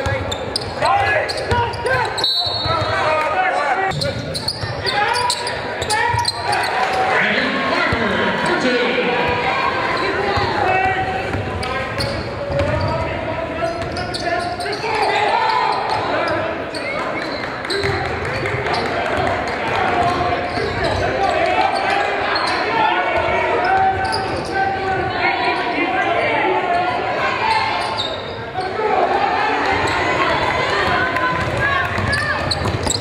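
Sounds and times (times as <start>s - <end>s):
sneakers squeaking: 0.0s - 7.2s, 9.2s - 25.8s, 27.4s - 28.8s, 30.8s - 33.0s
players and spectators calling out: 0.0s - 33.0s.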